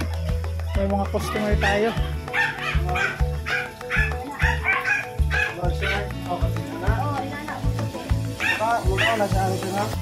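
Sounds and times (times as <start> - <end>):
music with bass beat: 0.0 - 10.0.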